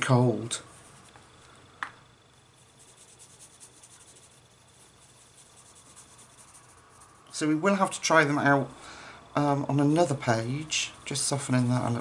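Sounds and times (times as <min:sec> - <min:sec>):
pencil scratching on paper: 0:02.4 - 0:07.3.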